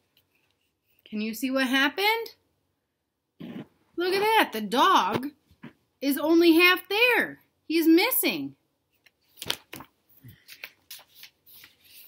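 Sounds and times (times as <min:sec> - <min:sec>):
paper pages rustling: 0:08.9 - 0:12.0.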